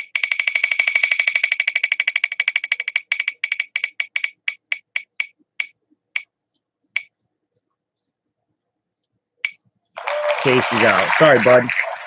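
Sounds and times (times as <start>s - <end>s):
spinning wheel ticks from phone: 0.0s - 6.3s.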